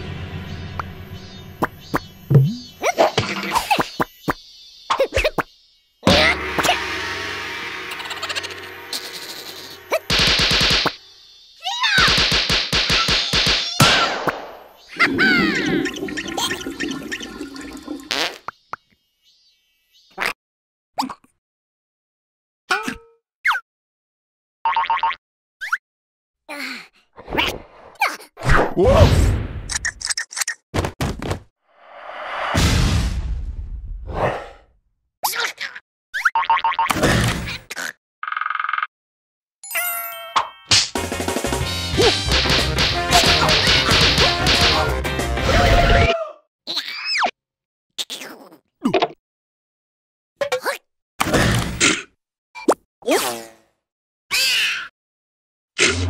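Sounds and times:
cartoon boings and clicks: 2.3 - 4.0
cartoon rushing burst: 6.1 - 10.9, 15.0 - 18.2
rapid-fire cartoon hits: 6.1 - 11.0, 32.5 - 33.9, 42.2 - 45.0
long ringing tone: 6.4 - 10.0.

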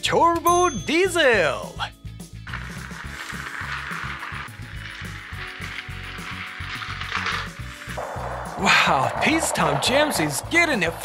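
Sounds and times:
background music: 0.0 - 11.0
toy trains whirring and rattling: 2.4 - 8.3.

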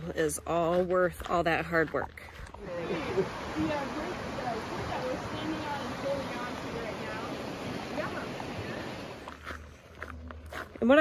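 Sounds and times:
woman speaking: 0.0 - 2.3
footsteps on dirt trail: 0.0 - 11.0.

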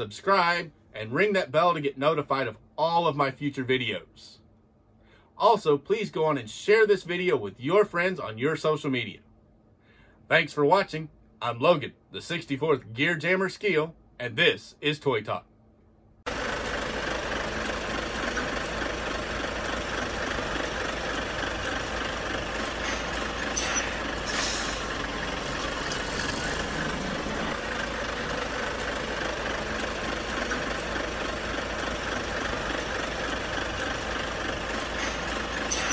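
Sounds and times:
vehicle engine running: 16.3 - 35.9.

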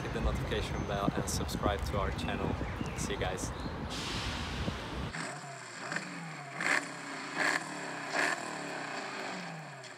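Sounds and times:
engine revving: 5.1 - 9.9.

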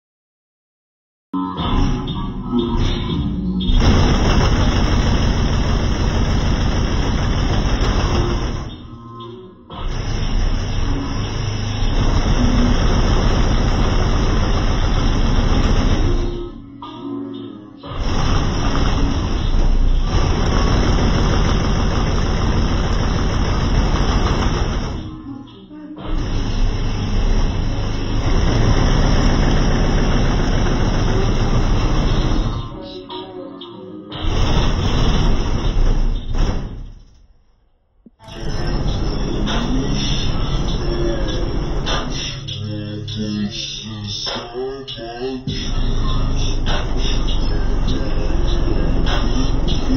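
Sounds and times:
distorted car stereo bass: 1.6 - 16.8, 17.8 - 32.8, 34.2 - 36.7, 38.1 - 49.9.

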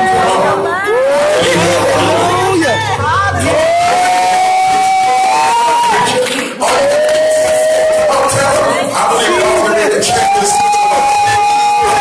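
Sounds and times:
congregation shouting and cheering: 0.0 - 12.0
person holding long shouted notes: 0.9 - 6.1.

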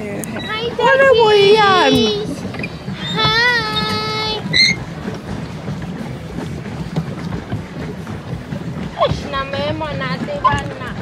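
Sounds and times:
paddle wheel churning water: 0.0 - 11.0.

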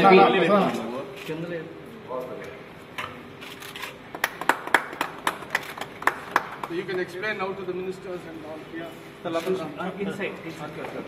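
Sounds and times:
people clapping: 4.1 - 7.2.

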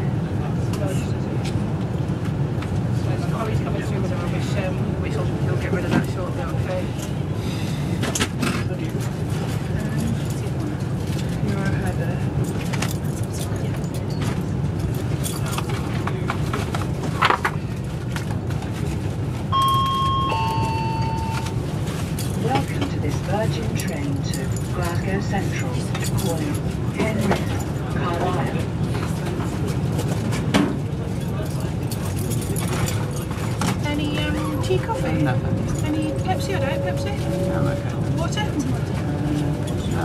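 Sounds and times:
train carriage hum and rumble: 0.0 - 40.0
two-note chime: 19.6 - 21.6.

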